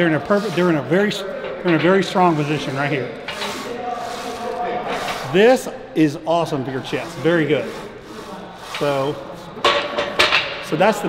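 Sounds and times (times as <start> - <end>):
bar carriage sliding on rods: 0.0 - 5.7, 6.4 - 10.3.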